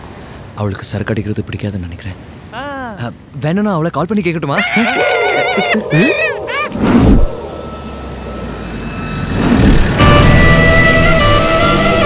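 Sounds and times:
low rumble: 5.7s - 10.0s
whoosh: 5.8s - 10.2s
background music: 9.9s - 12.0s.

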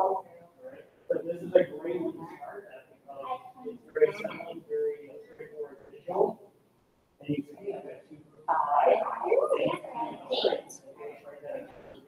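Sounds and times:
indistinct talk of people: 0.0s - 12.0s.

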